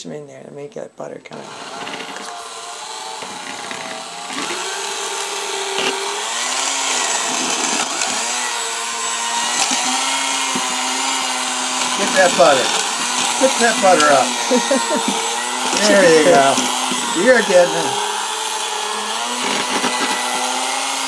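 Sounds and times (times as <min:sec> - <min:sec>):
electric hand mixer whining: 0:01.3 - 0:21.0.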